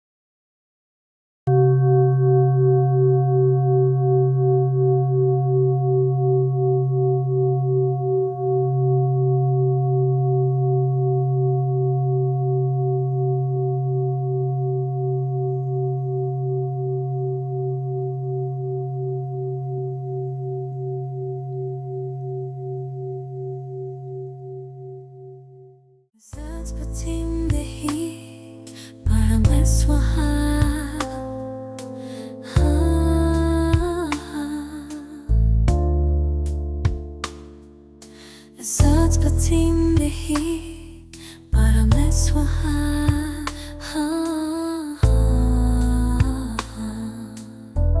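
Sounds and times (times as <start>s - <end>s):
singing bowl ringing: 1.5s - 25.9s.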